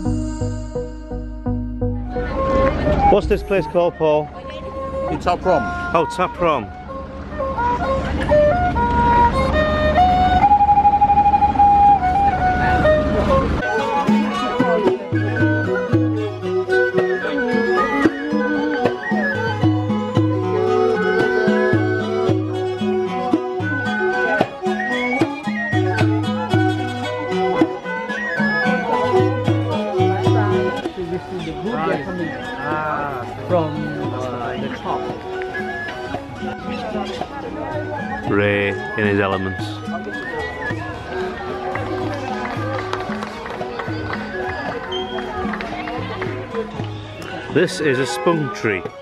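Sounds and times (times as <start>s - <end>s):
struck percussion beats: 0.0s - 4.1s
low held notes: 0.0s - 18.7s
bowed string fiddle melody: 0.0s - 49.0s
ensemble of fiddles and flute: 2.0s - 49.0s.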